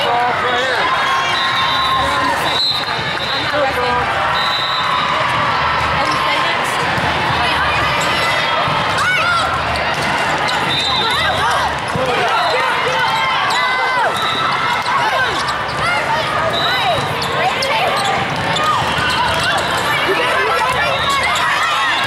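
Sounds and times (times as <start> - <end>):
many voices and player calls: 0.0 - 22.0
volleyballs thumping: 6.8 - 7.6.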